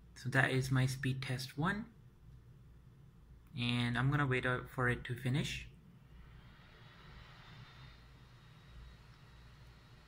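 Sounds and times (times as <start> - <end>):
faint low hum and hiss: 0.0 - 10.0.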